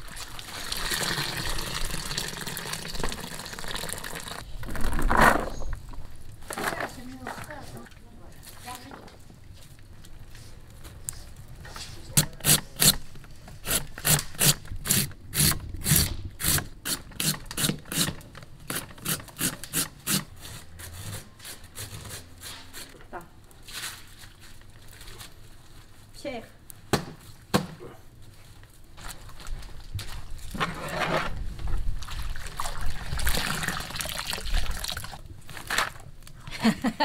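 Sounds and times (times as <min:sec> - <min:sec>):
water sloshing in a wok: 0:00.0 - 0:03.7
loud rough scrape: 0:30.5 - 0:31.4.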